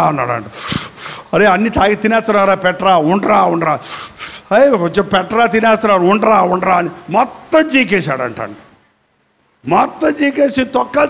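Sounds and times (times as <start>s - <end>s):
man preaching into a microphone: 0.0s - 8.7s, 9.6s - 11.0s.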